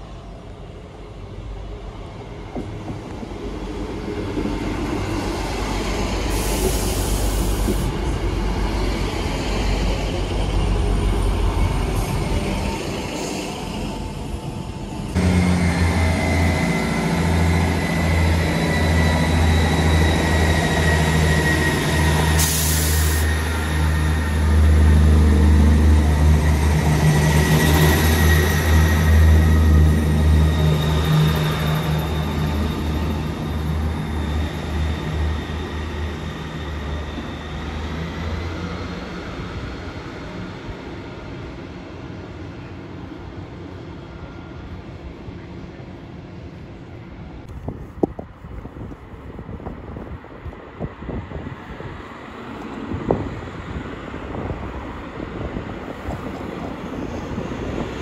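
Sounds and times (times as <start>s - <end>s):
train drone with high whine: 0.0s - 58.0s
train rumbling: 0.0s - 58.0s.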